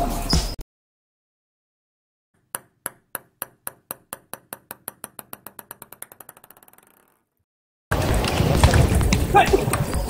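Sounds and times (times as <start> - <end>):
table tennis ball bouncing: 2.4 - 7.4.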